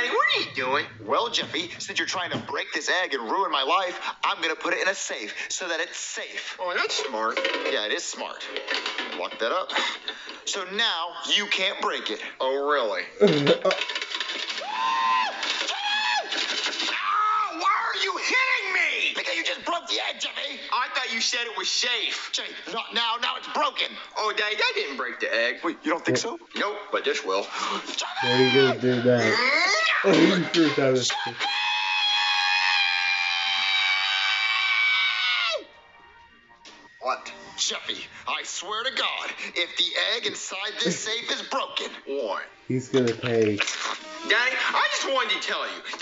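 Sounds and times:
man screaming: 0:28.1 - 0:30.5.

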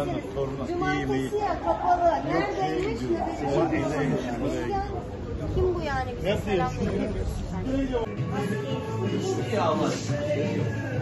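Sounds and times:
indistinct talking: 0:00.0 - 0:11.0
background music: 0:06.2 - 0:11.0.

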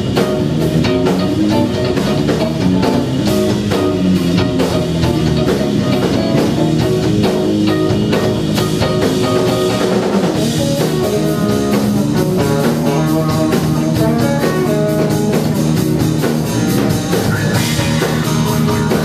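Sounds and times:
drum kit: 0:00.0 - 0:19.0
electric bass: 0:00.0 - 0:19.0
electric guitar: 0:00.0 - 0:19.0.

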